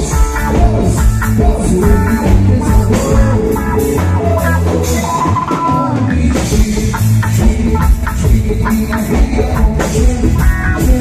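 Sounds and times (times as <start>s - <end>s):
dance band playing upbeat music: 0.0s - 11.0s
steady drum beat: 0.0s - 11.0s.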